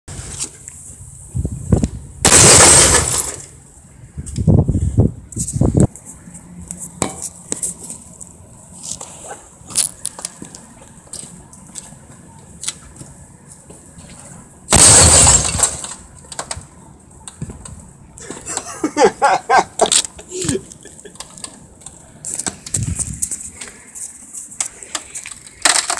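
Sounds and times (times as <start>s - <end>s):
glass shattering: 2.3s - 3.5s, 14.7s - 16.0s.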